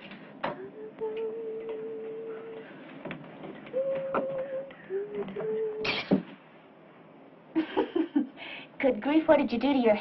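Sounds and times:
person humming steady notes: 0:00.4 - 0:02.8, 0:03.7 - 0:06.2.

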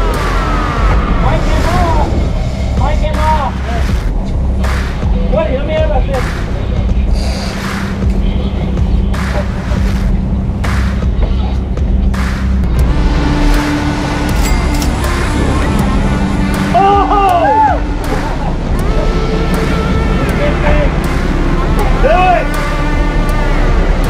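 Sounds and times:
background music: 0:00.0 - 0:24.0
boat engines rumbling: 0:00.0 - 0:24.0
person shouting: 0:16.7 - 0:17.9.

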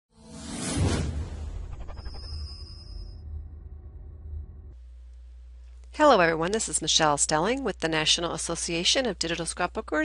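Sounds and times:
whoosh sound effect: 0:00.3 - 0:03.1
deep bass note: 0:03.1 - 0:05.0.

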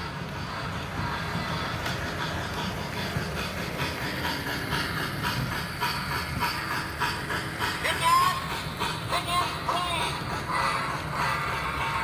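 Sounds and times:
rhythmic steam chuff with hiss: 0:00.0 - 0:12.0
train rumbling on track: 0:00.0 - 0:12.0.

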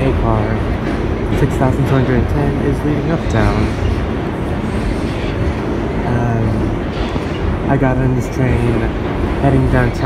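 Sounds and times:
subway train rumbling in tunnel: 0:00.0 - 0:10.0.

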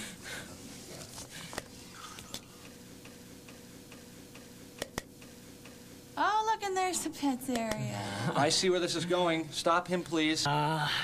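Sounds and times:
faint steady hum: 0:00.0 - 0:11.0
sharp click: 0:04.4 - 0:05.3.

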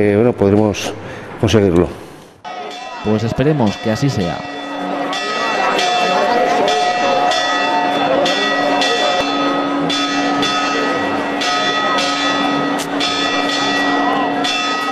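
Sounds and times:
crowd chatter: 0:01.1 - 0:14.9
church bells ringing a peal: 0:02.5 - 0:14.9.

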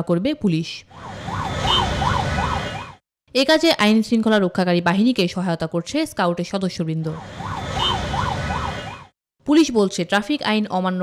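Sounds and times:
road traffic engines rumbling: 0:00.9 - 0:02.9, 0:07.1 - 0:09.0
siren yelping: 0:00.9 - 0:03.0, 0:07.0 - 0:09.1.

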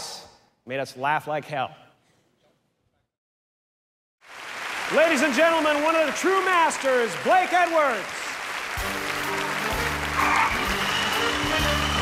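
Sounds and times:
audience applauding: 0:04.2 - 0:12.0.

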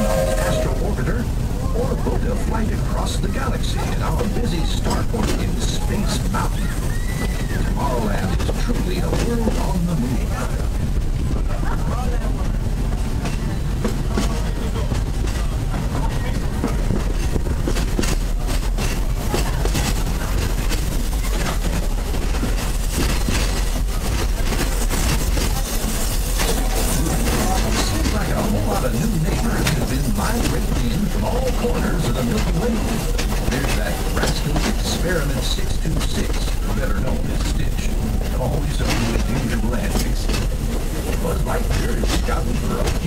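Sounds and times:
people talking: 0:00.0 - 0:12.8, 0:14.1 - 0:16.9, 0:23.9 - 0:40.5, 0:41.1 - 0:43.0
passengers' voices: 0:00.0 - 0:43.0
train car rumbling on track: 0:00.0 - 0:43.0
rattles and clicks of wheels: 0:01.1 - 0:43.0.

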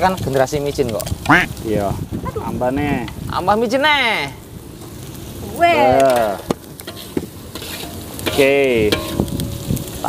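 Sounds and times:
faint sizzle of frying oil: 0:00.0 - 0:10.0
metal ladle clinking in wok: 0:07.6 - 0:09.4.

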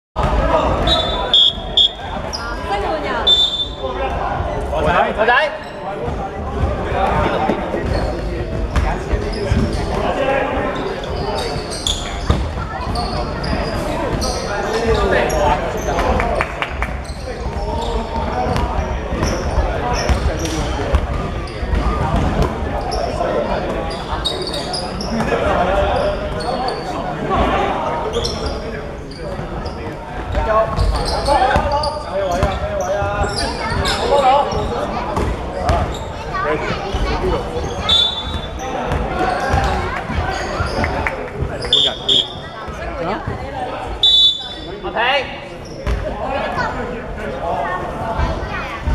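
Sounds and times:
sneakers squeaking: 0:00.2 - 0:04.5, 0:05.6 - 0:16.2, 0:16.8 - 0:27.1, 0:28.0 - 0:46.8
players calling out: 0:37.6 - 0:46.7.

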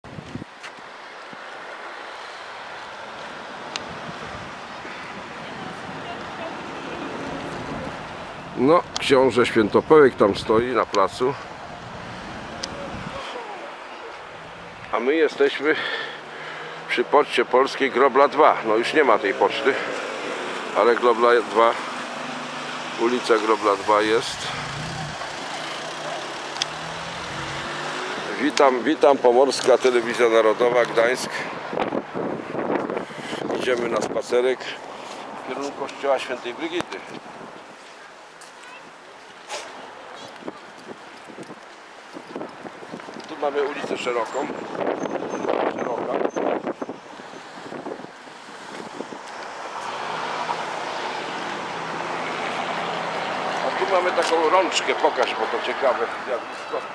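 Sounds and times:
street traffic noise: 0:00.0 - 0:56.9
car passing: 0:01.5 - 0:33.6, 0:46.2 - 0:56.9
wind on microphone: 0:03.6 - 0:06.3, 0:11.4 - 0:13.2, 0:31.5 - 0:34.2, 0:40.3 - 0:49.5.

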